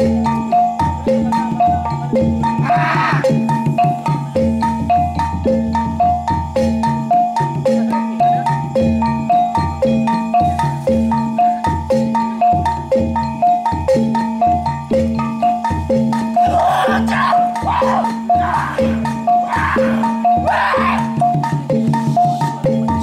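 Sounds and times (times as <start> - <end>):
drum beats: 0.0 - 23.0
struck metal percussion melody: 0.0 - 23.0.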